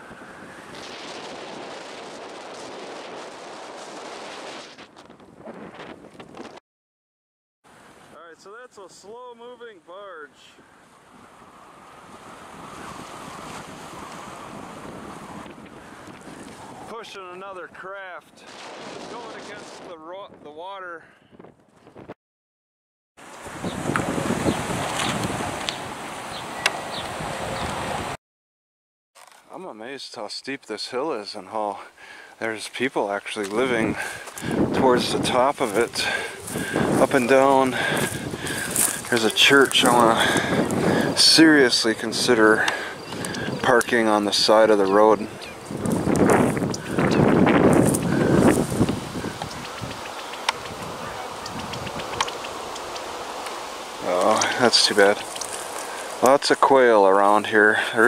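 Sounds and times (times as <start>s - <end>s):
wind blowing across microphone: 0.0s - 6.6s, 10.6s - 22.2s, 23.2s - 28.2s, 33.1s - 58.0s
sharp clicks: 48.8s - 50.8s, 51.4s - 53.6s
sharp ticks: 48.8s - 53.6s.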